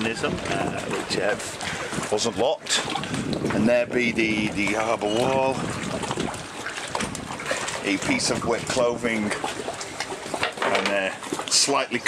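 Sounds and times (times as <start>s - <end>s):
seawater lapping against wall: 0.0s - 12.0s.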